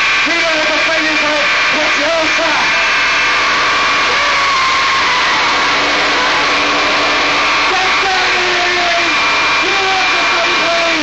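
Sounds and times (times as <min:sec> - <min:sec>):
distorted electronic noise: 0:00.0 - 0:11.0
held steady tones: 0:00.0 - 0:11.0.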